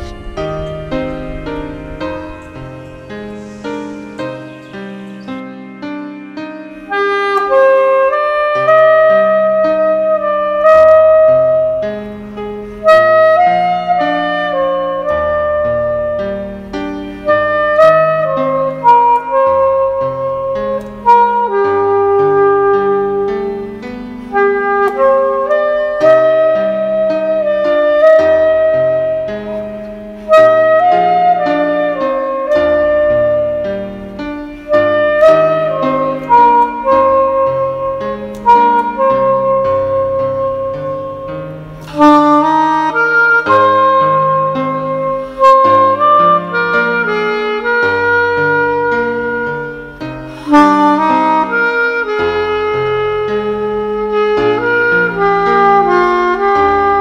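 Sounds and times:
sustained low chords: 0.0s - 42.6s
soprano saxophone melody: 6.3s - 57.0s.

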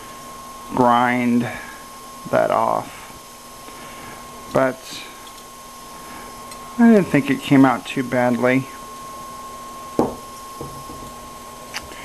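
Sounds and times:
ceramic bowl knock: 10.0s - 11.1s.

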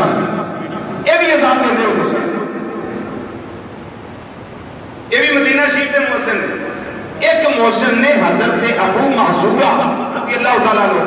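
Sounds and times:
speech echo: 0.0s - 3.6s, 5.0s - 11.0s
large hall background noise: 0.0s - 11.0s.

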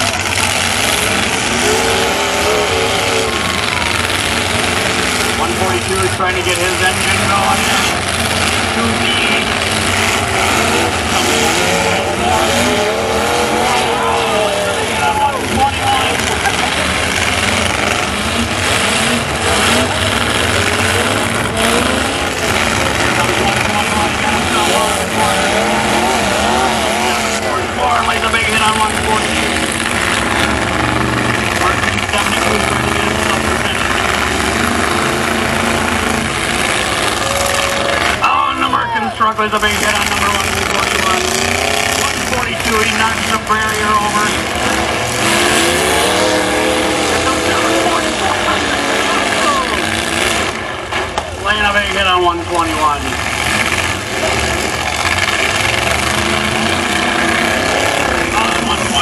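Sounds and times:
truck engines revving: 0.0s - 59.0s.

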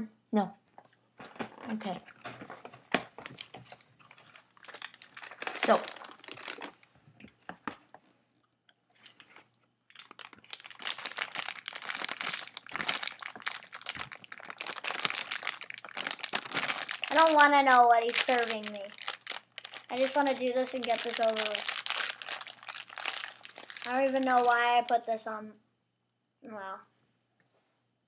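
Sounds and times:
food wrapper crinkling: 1.2s - 7.0s, 9.0s - 24.9s.

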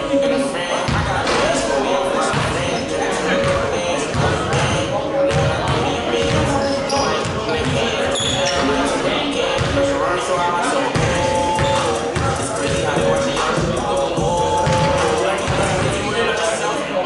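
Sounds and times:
music: 0.0s - 17.0s
voices in a gym: 0.0s - 17.0s
basketball bouncing on wooden floor: 14.6s - 15.9s.

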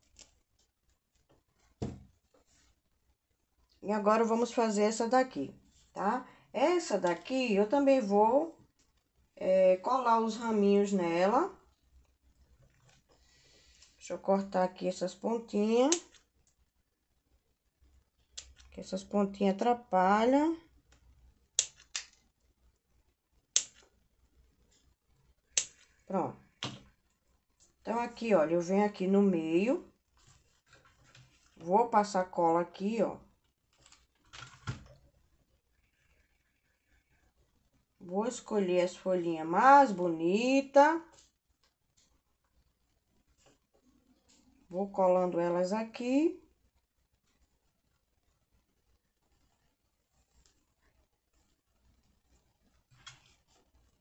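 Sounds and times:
rustling and handling noises: 0.0s - 3.8s, 5.4s - 7.5s, 11.6s - 14.1s, 29.9s - 31.8s, 33.2s - 38.0s, 41.0s - 44.7s, 46.5s - 54.0s
soft knock of object set down: 1.8s - 2.1s
scissors snipping: 15.9s - 16.2s, 23.6s - 23.8s.

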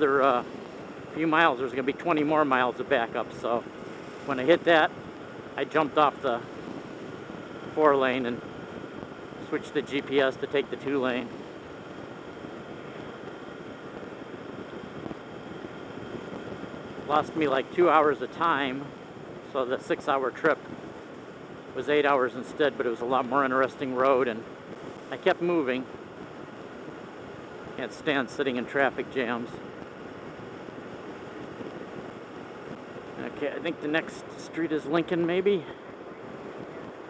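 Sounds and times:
wind and road noise: 0.0s - 37.0s.

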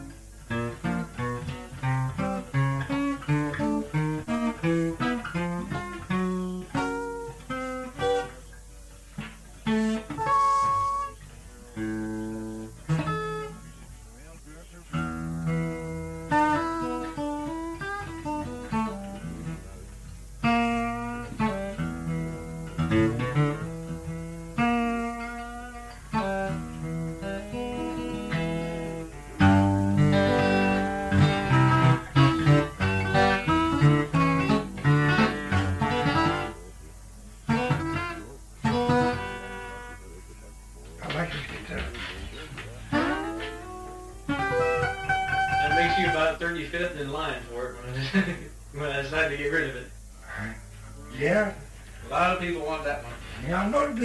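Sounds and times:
acoustic guitar picking: 0.0s - 54.0s.

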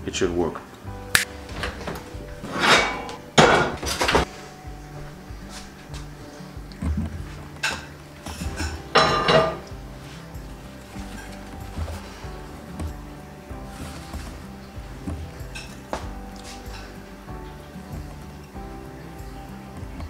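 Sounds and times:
soft background music: 0.0s - 20.0s
kitchenware clattering on counter: 1.5s - 4.3s, 7.5s - 9.8s.

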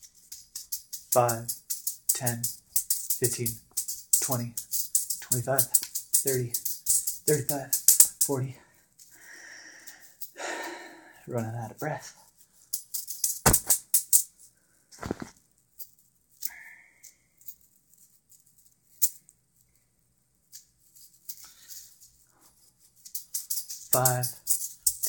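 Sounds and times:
metal rings jingling and rattling: 0.0s - 8.3s, 20.6s - 25.0s.

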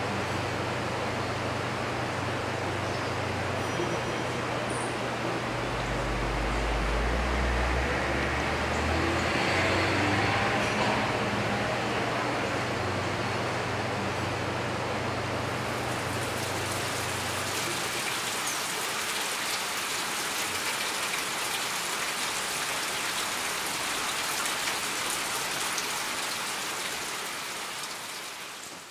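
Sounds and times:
low steady hum: 0.0s - 8.8s
rain falling: 0.0s - 28.9s.

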